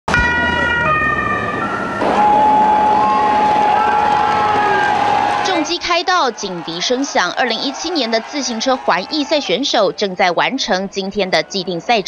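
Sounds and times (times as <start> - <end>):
motorcycle sirens: 0.1 - 9.4
roadside crowd noise: 0.1 - 12.0.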